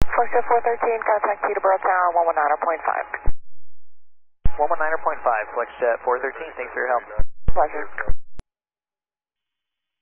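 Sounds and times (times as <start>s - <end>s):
person speaking over radio: 4.5s - 8.1s.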